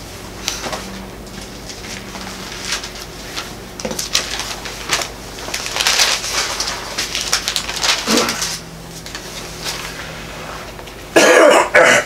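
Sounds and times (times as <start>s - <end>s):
man coughing: 11.2s - 12.0s.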